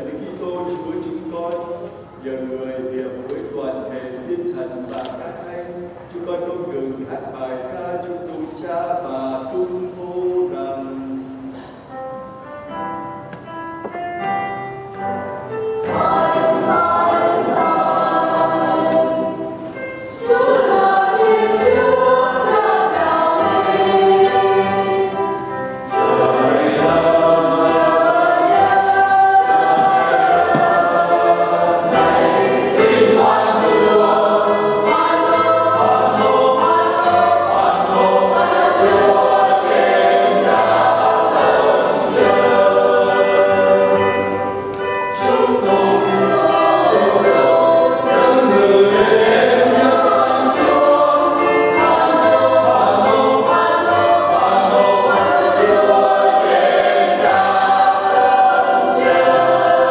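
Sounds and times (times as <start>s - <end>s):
church choir singing a hymn: 0.0s - 12.1s, 15.0s - 59.9s.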